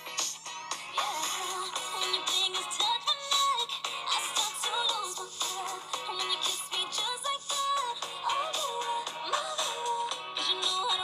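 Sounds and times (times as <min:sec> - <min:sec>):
pop backing track: 0:00.0 - 0:11.0
woman singing pop song: 0:00.0 - 0:11.0.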